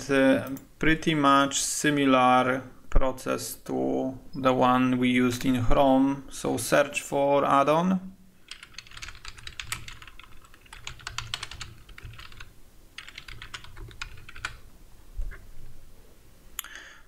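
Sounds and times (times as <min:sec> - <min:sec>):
typing on computer keyboard: 0:08.5 - 0:14.6.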